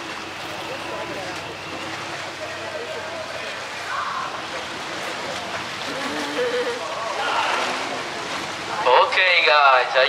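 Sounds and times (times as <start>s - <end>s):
boat engine: 0.0s - 10.0s
water noise: 0.0s - 10.0s.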